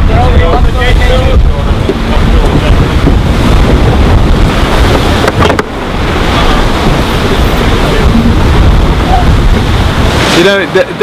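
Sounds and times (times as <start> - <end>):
sea water rushing along hull: 0.0 - 11.0
wind buffeting microphone: 0.0 - 11.0.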